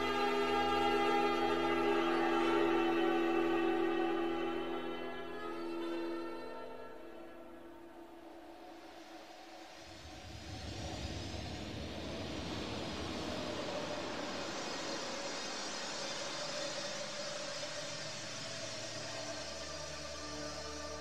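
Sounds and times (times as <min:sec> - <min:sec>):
steady musical tones: 0:00.0 - 0:10.4.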